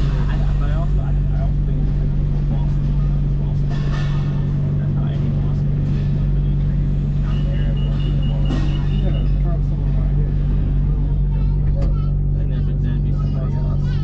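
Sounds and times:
people's voices: 0.0 - 14.0
train car hum: 0.0 - 14.0.

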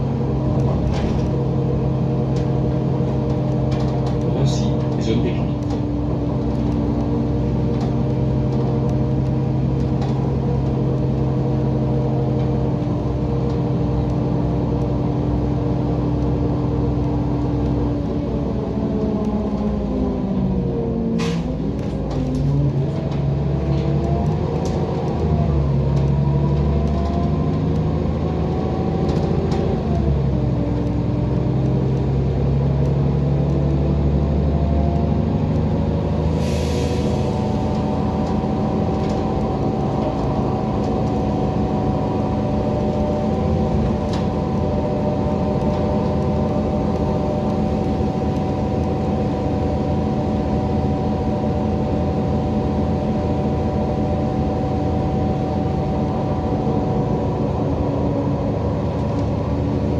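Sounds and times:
bus engine hum: 0.0 - 59.9
click: 23.8 - 25.3, 25.9 - 27.9, 58.9 - 59.4.

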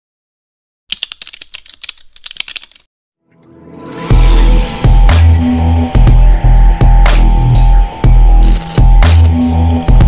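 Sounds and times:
keyboard typing clicks: 0.9 - 2.8.

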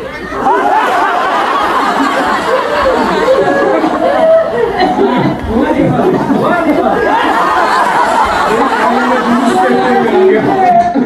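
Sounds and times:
men chattering: 0.0 - 11.0.

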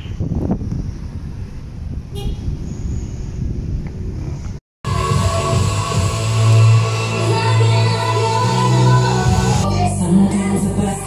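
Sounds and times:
street traffic rumbling: 0.0 - 11.0
car horn toot: 2.1 - 2.5.

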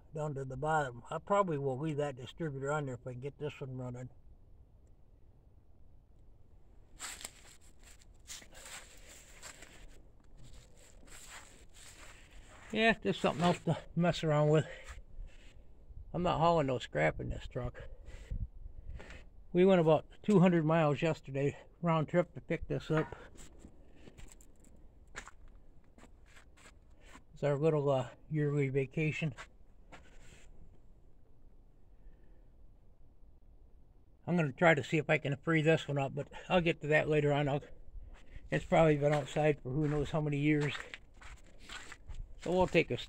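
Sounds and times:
footsteps in dry leaves: 7.0 - 13.6, 39.1 - 42.8.

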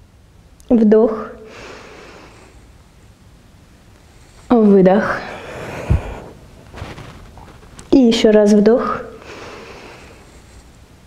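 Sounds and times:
woman breathing in: 1.5 - 2.8, 5.2 - 6.4, 9.2 - 10.7.

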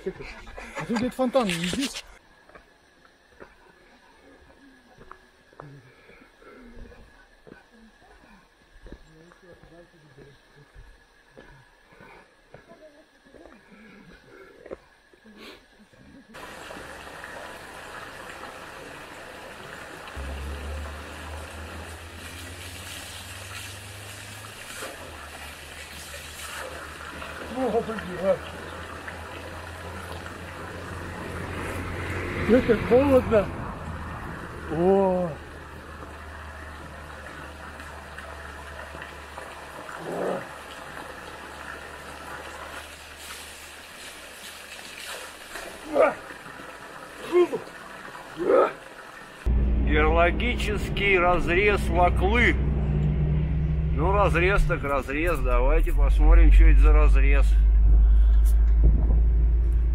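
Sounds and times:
footsteps on stony path: 6.8 - 9.7
water pouring and splashing: 16.3 - 52.5
low rumble: 49.5 - 59.9.

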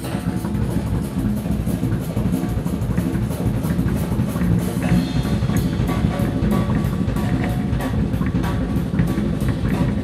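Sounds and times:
drum groove with cymbals: 0.0 - 10.0
electric bass line: 0.0 - 10.0.

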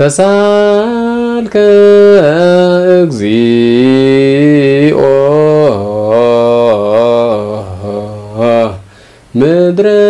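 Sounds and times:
man chanting a hymn unaccompanied: 0.0 - 10.0.

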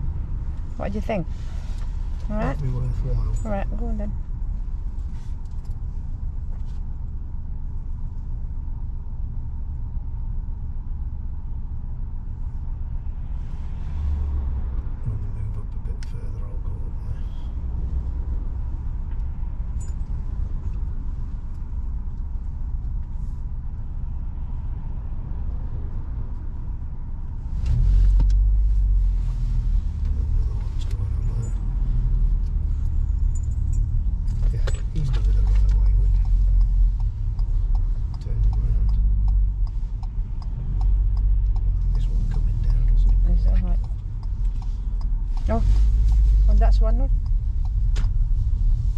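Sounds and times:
car engine and tyre rumble: 0.0 - 48.9.

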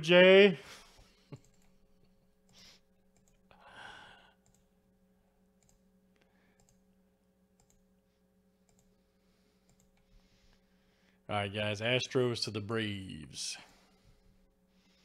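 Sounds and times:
computer mouse clicks: 2.4 - 3.4, 4.4 - 4.7, 5.6 - 5.8, 6.6 - 6.8, 7.6 - 7.8, 8.7 - 8.9, 9.6 - 10.1
breathy exhale: 3.6 - 4.4.

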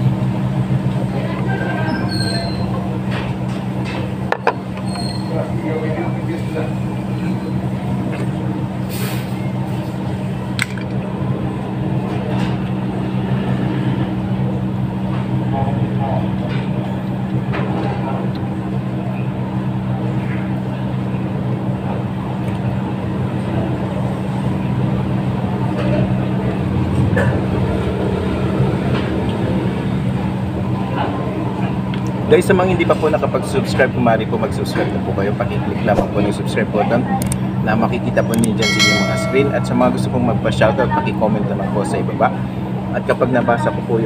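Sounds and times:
low mechanical hum: 0.0 - 44.0.

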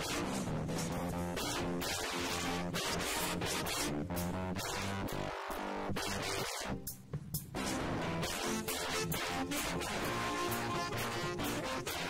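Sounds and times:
trombone: 0.0 - 6.7, 7.6 - 12.0
bass: 0.0 - 12.0
drum kit with cymbals: 0.0 - 12.0
saxophones: 7.7 - 12.0.

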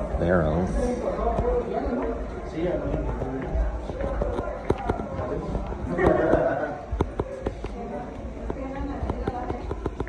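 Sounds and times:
people talking: 0.0 - 10.0
footsteps on hard floor: 1.3 - 10.0.

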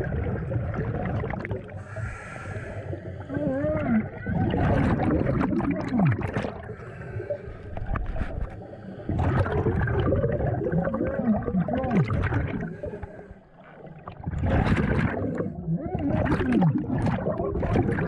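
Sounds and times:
scuba regulator bubbles gurgling: 0.0 - 18.0.

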